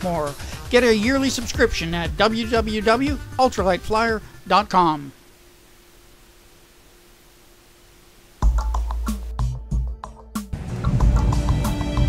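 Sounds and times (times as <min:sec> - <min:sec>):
faint steady hum: 0:03.8 - 0:08.5.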